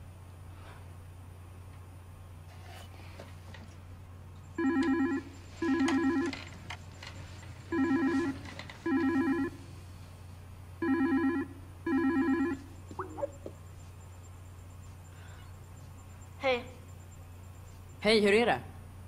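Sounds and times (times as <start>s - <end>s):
steady low hum: 0.0s - 19.0s
warbling video call ringtone: 7.8s - 9.6s, 10.8s - 13.5s.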